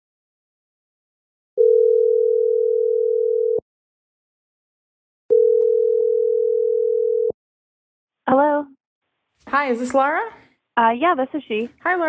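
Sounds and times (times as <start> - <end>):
telephone ringback tone: 1.6 - 3.6, 5.3 - 7.4.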